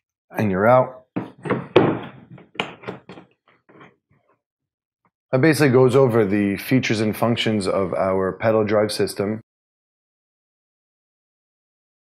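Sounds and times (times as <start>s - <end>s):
knocks and clicks of handling: 1.2s - 3.9s.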